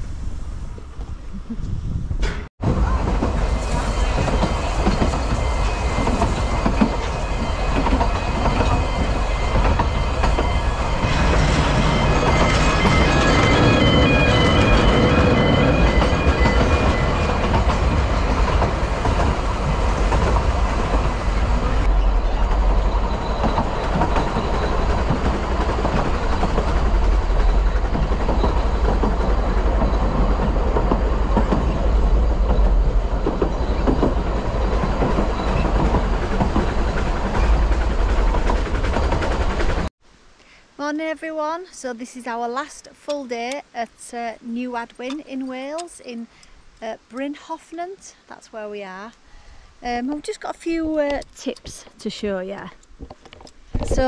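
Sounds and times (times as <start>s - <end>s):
train wheels rumbling on track: 2.1s - 39.9s
broken high-pitched tones: 3.7s - 18.5s.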